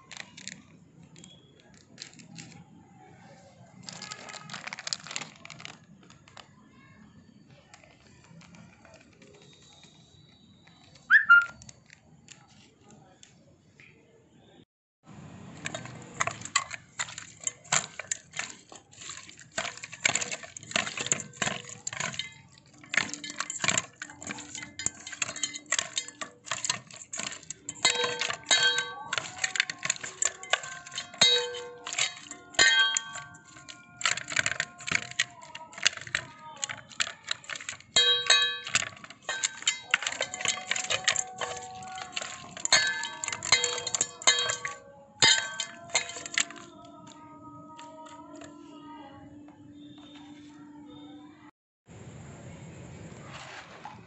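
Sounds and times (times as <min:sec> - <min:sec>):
steel bowl knocking and ringing: 0:15.6 - 0:46.7.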